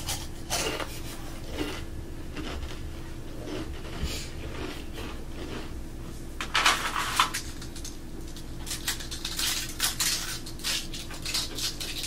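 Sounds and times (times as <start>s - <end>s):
rice crisps crunching: 2.4s - 2.8s, 3.4s - 5.8s, 6.6s - 12.0s.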